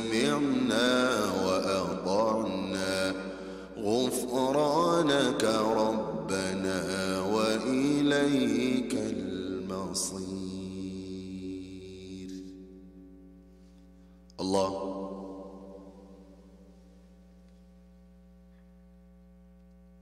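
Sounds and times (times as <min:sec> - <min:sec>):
man chanting recitation: 0:00.0 - 0:12.7, 0:14.4 - 0:16.2.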